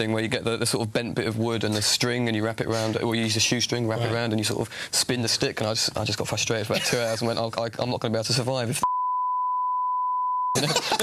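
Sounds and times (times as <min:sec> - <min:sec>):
people talking: 0:00.0 - 0:08.9, 0:10.6 - 0:11.0
censor bleep tone: 0:08.8 - 0:10.6
people laughing: 0:10.6 - 0:11.0.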